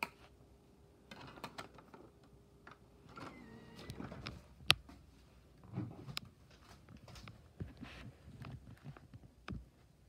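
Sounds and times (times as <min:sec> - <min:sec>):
disc drive whirring: 0:02.0 - 0:04.5.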